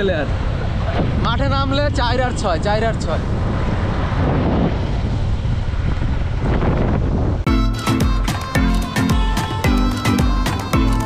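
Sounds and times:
wind buffeting microphone: 0:00.0 - 0:07.5
road rumble: 0:00.0 - 0:11.0.

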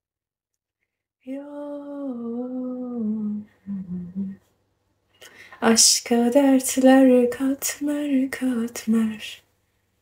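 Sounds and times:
woman humming a melody: 0:01.4 - 0:04.4.

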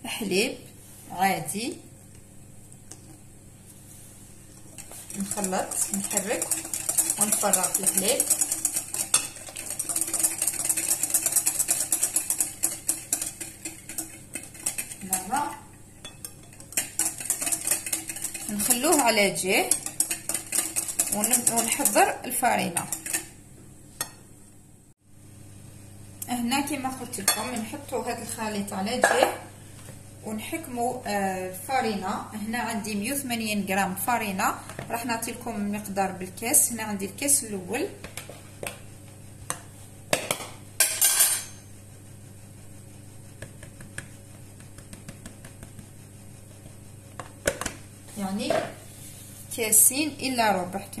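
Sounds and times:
faint steady hum: 0:00.0 - 0:51.0
flour swishing: 0:41.7 - 0:47.1.

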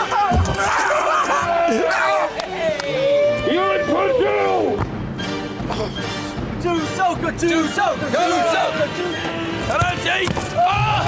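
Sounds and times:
long held cry: 0:00.0 - 0:04.8
men yelling: 0:00.0 - 0:04.8, 0:06.6 - 0:11.0.

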